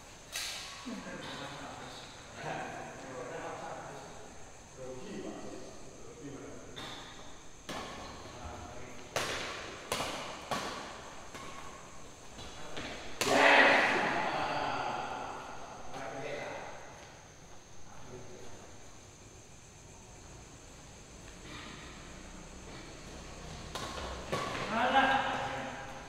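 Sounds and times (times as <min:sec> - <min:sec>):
rackets striking shuttlecock: 0:09.0 - 0:12.1, 0:23.5 - 0:25.0.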